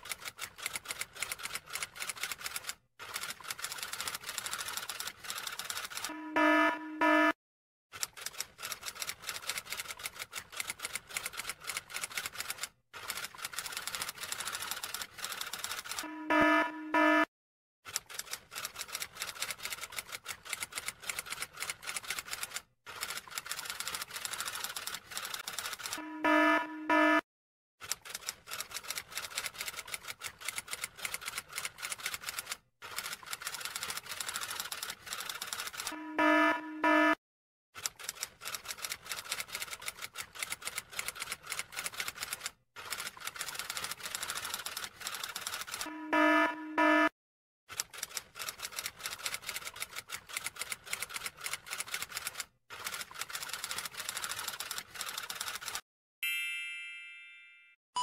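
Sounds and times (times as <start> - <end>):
typewriter bell ding: 56.2 - 58.0.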